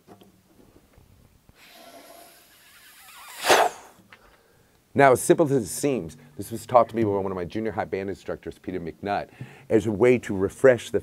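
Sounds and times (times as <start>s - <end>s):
man blowing air into drum shell: 1.6s - 4.6s, 6.0s - 6.6s, 9.3s - 9.7s.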